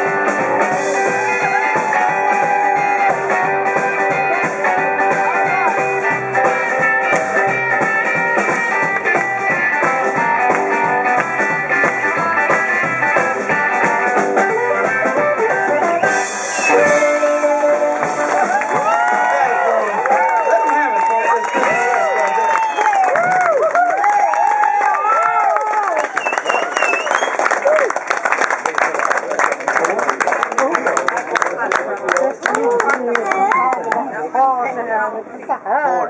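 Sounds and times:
blues harmonica: 0.0 - 18.6
live blues band: 0.0 - 34.8.

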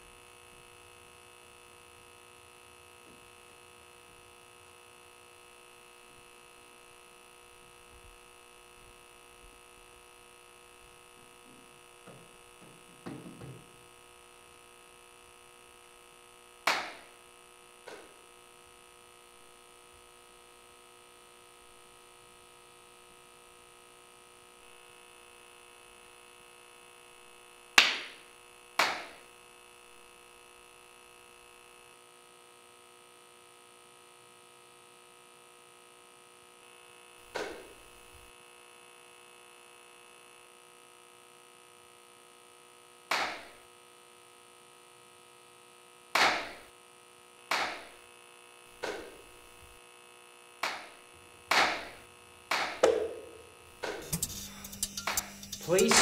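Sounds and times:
faint electrical hum: 0.0 - 39.3
sharp hand claps with echo: 16.7 - 17.1, 27.8 - 28.2, 28.8 - 29.2.

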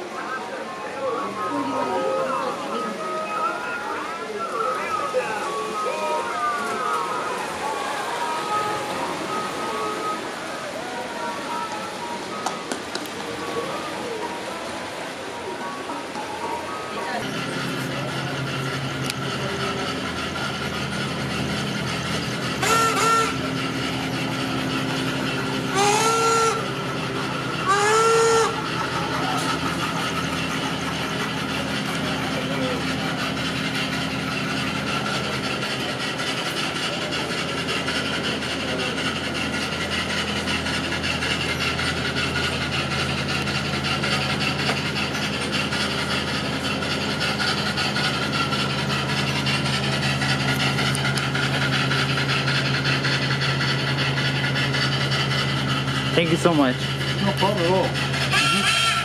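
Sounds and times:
low engine hum: 0.0 - 59.0
steam whistle toots: 22.5 - 24.0, 25.7 - 30.4, 58.1 - 59.0.

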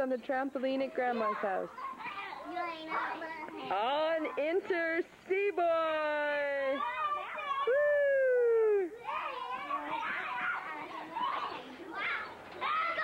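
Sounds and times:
young children yelling and shouting: 0.9 - 4.5, 6.1 - 13.0.

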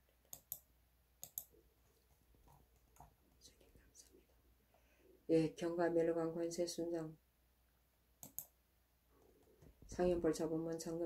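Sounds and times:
faint sharp clicks: 0.3 - 1.5, 8.2 - 8.6.

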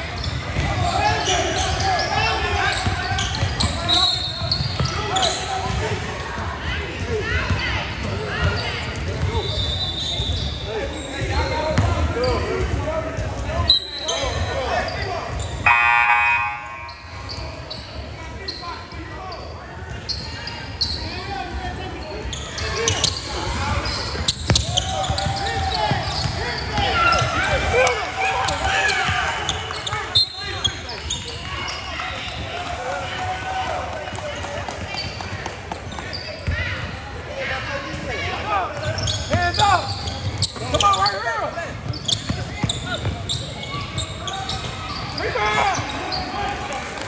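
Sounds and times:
people shouting and talking: 0.0 - 47.0
buzzer: 15.7 - 17.2.

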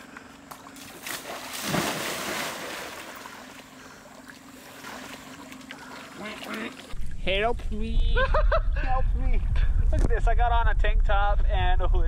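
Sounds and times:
water sloshing and lapping: 0.0 - 7.2
person splashing into water: 0.8 - 3.6.

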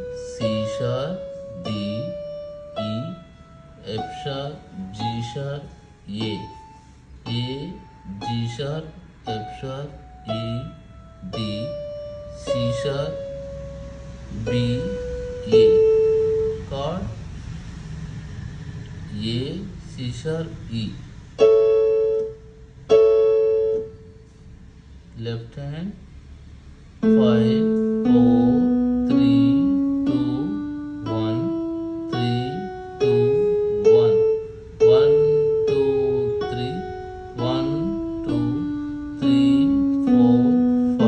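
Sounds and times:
electronic keyboard notes: 0.0 - 24.6, 27.0 - 41.0.

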